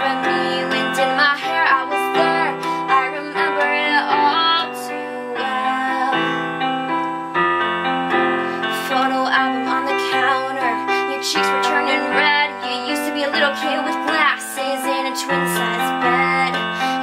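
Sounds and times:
woman singing wordless notes: 0.0 - 7.4, 8.1 - 17.0
electronic keyboard piano chords: 0.0 - 17.0.

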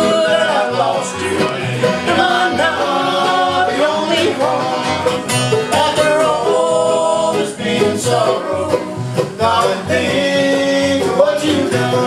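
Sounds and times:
acoustic guitars: 0.0 - 12.0
mandolin: 0.0 - 12.0
two voices singing in harmony: 0.0 - 12.0
upright bass: 0.0 - 12.0.

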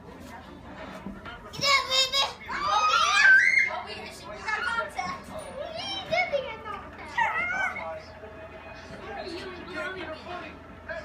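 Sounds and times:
children chattering and squealing: 1.6 - 8.2.

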